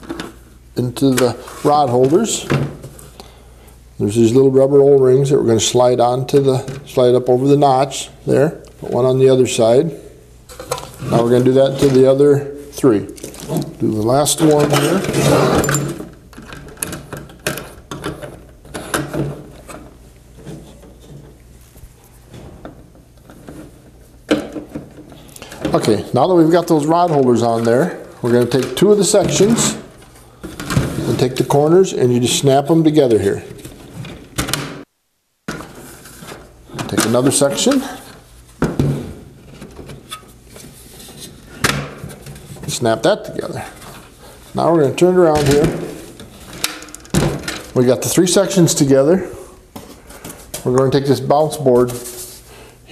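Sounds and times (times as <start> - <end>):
plastic rubbing: 13.1 - 15.6.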